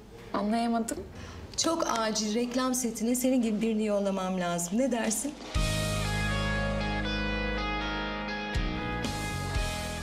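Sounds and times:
held guitar chords: 5.6s - 10.0s.

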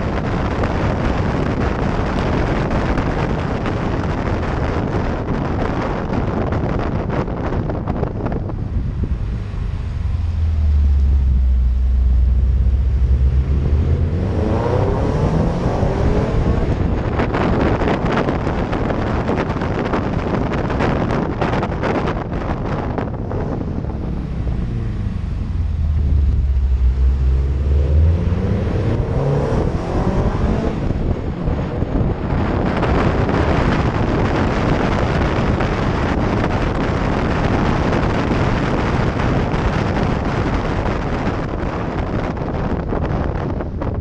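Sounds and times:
car engine droning: 0.0s - 44.0s
wind buffeting microphone: 0.0s - 44.0s.

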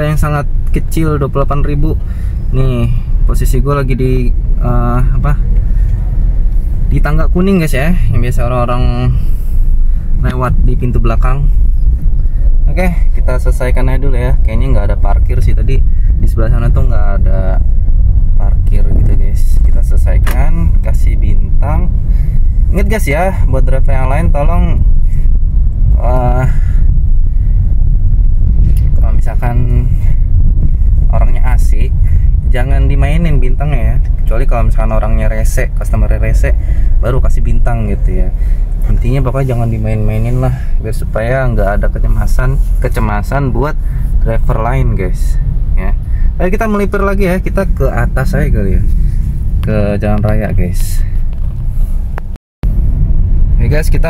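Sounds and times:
man talking: 0.0s - 5.5s, 6.8s - 9.4s, 10.2s - 11.6s, 12.6s - 17.7s, 18.4s - 22.0s, 22.7s - 25.0s, 25.9s - 26.7s, 28.9s - 30.2s, 31.1s - 48.9s, 49.6s - 51.2s, 53.6s - 54.0s
car low rumble inside cabin: 0.0s - 54.0s.

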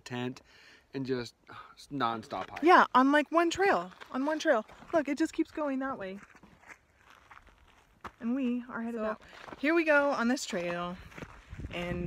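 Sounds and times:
footsteps on dirt trail: 2.3s - 12.0s
woman speaking: 2.6s - 6.2s, 8.2s - 11.0s, 11.7s - 12.0s.

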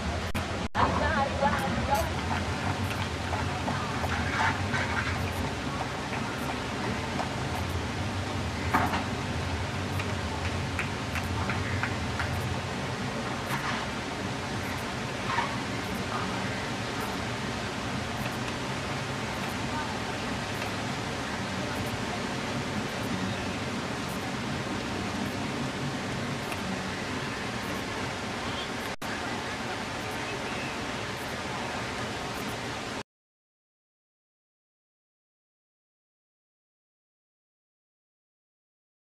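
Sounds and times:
faint distant voices: 0.0s - 33.0s
outdoor ambience hiss: 0.0s - 33.0s.

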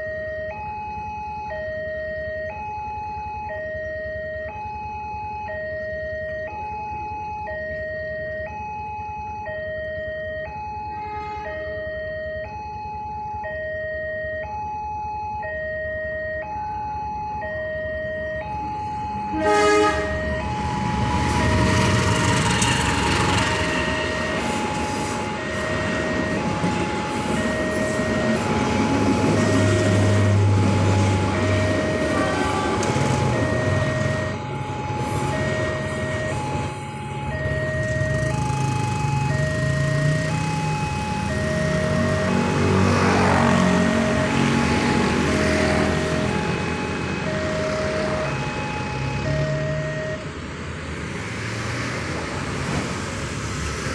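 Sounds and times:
vehicle engines rumbling: 16.4s - 53.9s
motorcycles revving and pulling away: 20.2s - 24.5s, 27.5s - 34.4s, 37.4s - 50.0s.

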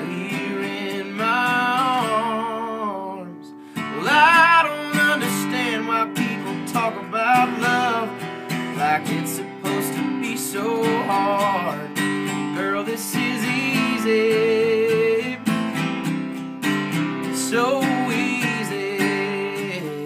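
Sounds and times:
man singing: 0.0s - 15.9s, 16.7s - 20.0s
strummed acoustic guitar: 0.0s - 20.0s.

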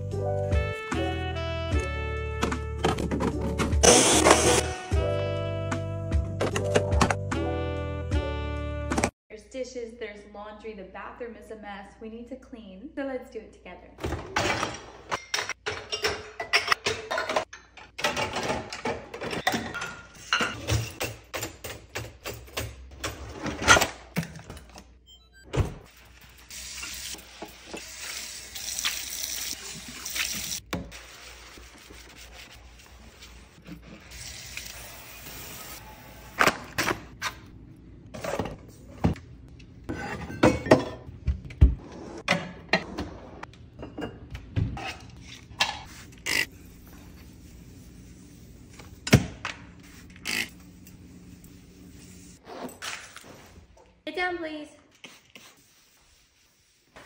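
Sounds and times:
dishes and glasses clattering: 14.4s - 21.2s, 39.9s - 41.1s, 43.8s - 44.4s
scrubbing in sink: 26.1s - 34.7s.

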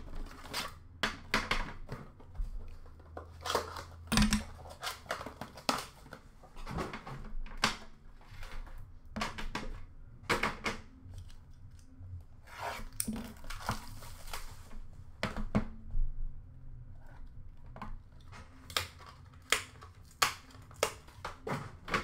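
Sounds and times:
packaging rustling and tearing: 12.7s - 14.8s.

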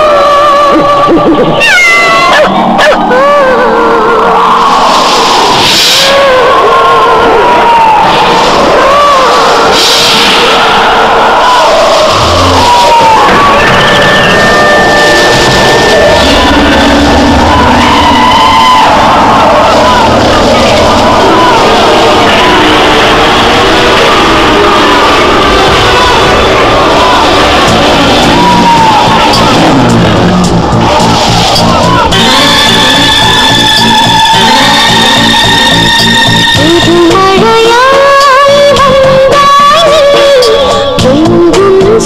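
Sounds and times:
voices shouting: 0.0s - 41.0s
cat-like yowls: 1.6s - 4.9s
dense steady noise: 9.4s - 36.6s
wavering high tone: 31.5s - 37.5s.

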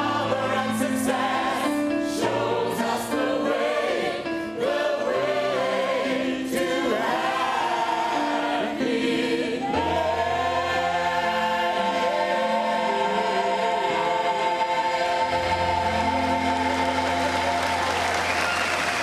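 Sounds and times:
choir singing: 0.0s - 19.0s.

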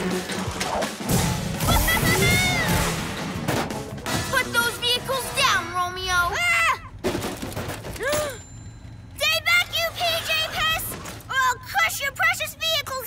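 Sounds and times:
cartoon voice exclamation: 1.6s - 2.8s.

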